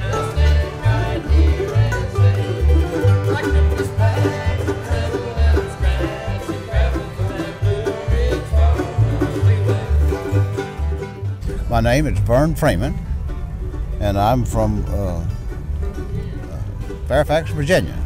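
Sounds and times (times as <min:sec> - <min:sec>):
alternating bass line: 0:00.0 - 0:18.0
banjo picking: 0:00.0 - 0:18.0
guitar picking: 0:00.0 - 0:18.0.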